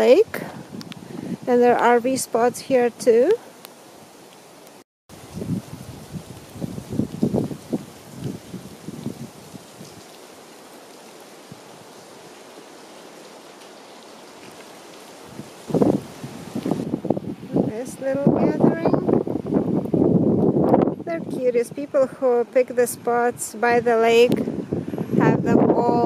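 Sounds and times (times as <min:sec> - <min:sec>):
rain hiss: 0:00.0 - 0:26.0.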